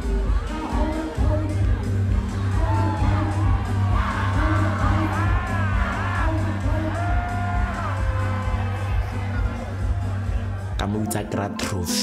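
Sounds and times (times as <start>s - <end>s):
crowd whooping and cheering: 0.0s - 10.8s
dance music with heavy bass: 0.0s - 12.0s.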